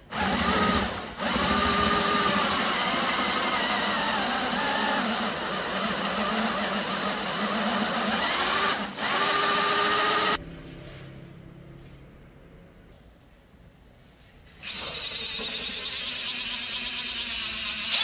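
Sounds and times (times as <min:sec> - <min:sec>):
electric drill boring into wood: 0:00.1 - 0:10.4, 0:14.6 - 0:18.0.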